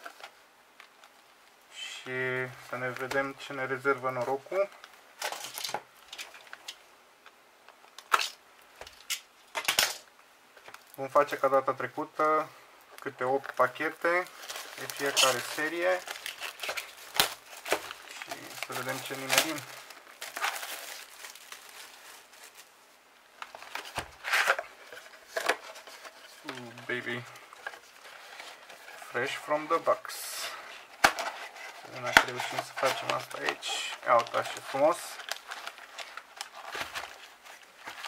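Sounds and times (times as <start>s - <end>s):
plastic shrink wrap crinkling: 12.9s - 38.0s.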